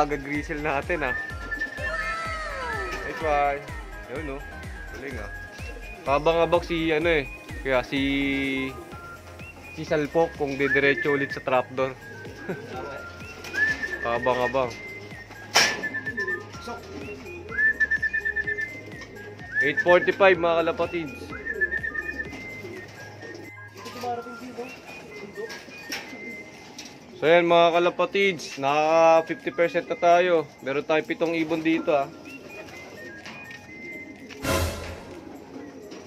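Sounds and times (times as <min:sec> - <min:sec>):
pigeons cooing: 0:00.0 - 0:36.0
quiet background music: 0:00.0 - 0:36.0.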